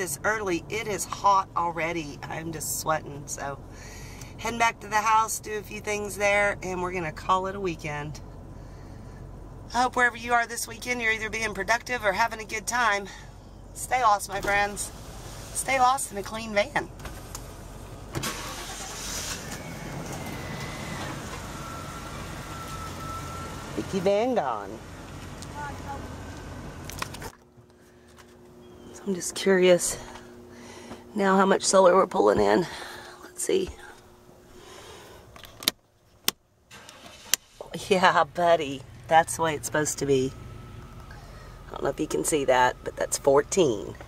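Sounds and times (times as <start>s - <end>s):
faint background hum: 0.0s - 18.2s, 21.6s - 36.7s, 37.6s - 44.0s
van engine idling: 0.0s - 31.4s, 36.7s - 44.0s
van engine starting: 14.2s - 16.0s, 17.0s - 27.3s, 36.7s - 44.0s.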